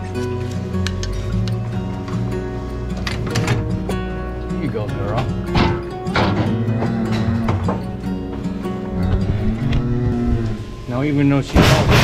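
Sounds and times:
cow bellowing: 5.3s - 10.9s.

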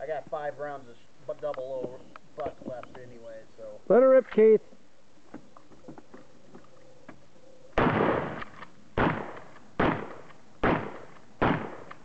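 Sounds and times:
shotgun shots with echo: 7.8s - 12.0s.

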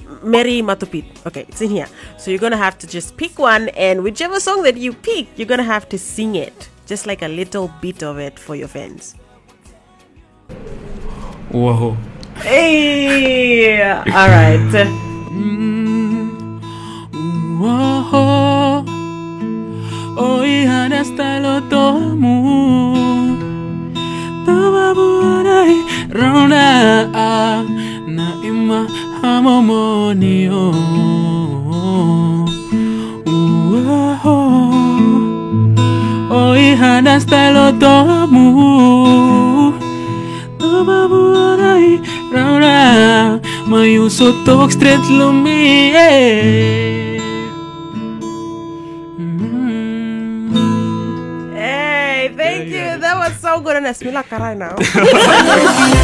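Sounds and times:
acoustic guitar: 0.0s - 56.0s
man singing: 9.1s - 10.5s, 14.1s - 18.9s, 19.9s - 23.5s, 24.4s - 35.4s, 36.2s - 39.8s, 40.6s - 47.5s, 49.2s - 51.0s, 51.6s - 53.3s.

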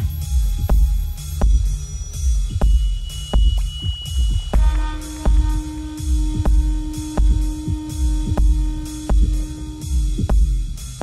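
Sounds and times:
deep bass beat thumping: 0.0s - 11.0s.

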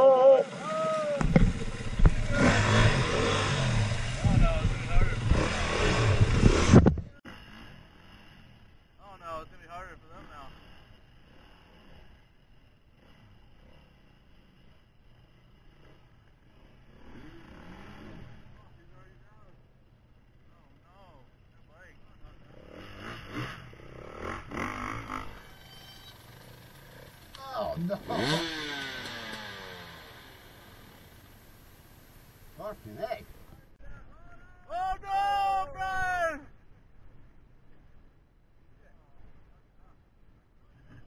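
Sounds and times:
dirt bike engine revving: 0.0s - 33.7s.

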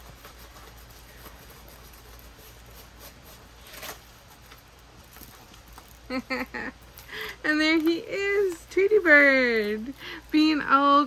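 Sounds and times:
canvas rustling and crinkling: 0.0s - 11.0s.

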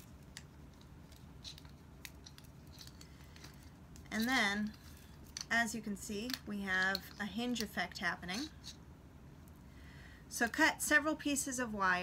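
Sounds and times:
wire clicking and scraping: 0.0s - 8.8s.

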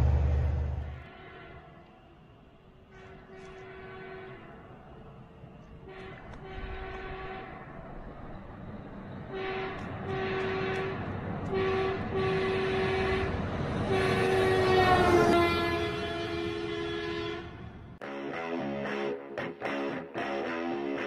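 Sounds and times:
rising rumble: 0.0s - 1.1s
air horn blasts: 0.9s - 1.9s, 3.0s - 4.6s, 5.8s - 7.6s, 9.3s - 18.2s.

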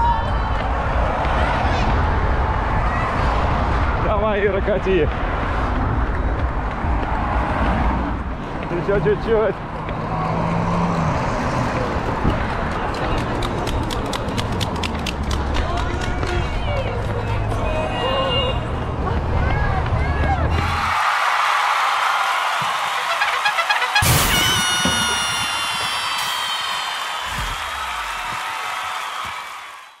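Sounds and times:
wind rumble: 0.0s - 8.7s
voices: 15.4s - 20.8s.

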